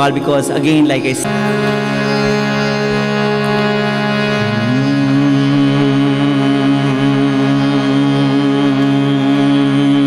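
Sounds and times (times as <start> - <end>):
harmonium: 0.0 - 10.0
tanpura drone: 0.0 - 10.0.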